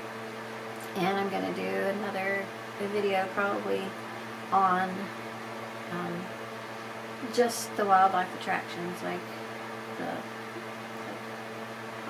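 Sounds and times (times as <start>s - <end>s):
electric fan humming: 0.0s - 12.0s.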